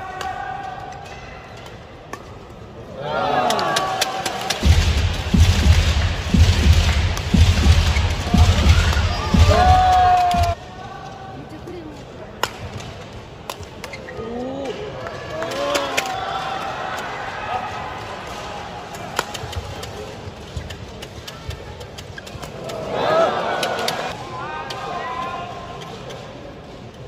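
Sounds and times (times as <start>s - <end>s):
people shouting in a hall: 0.0s - 1.5s, 2.8s - 11.4s, 14.2s - 19.5s, 22.6s - 25.8s.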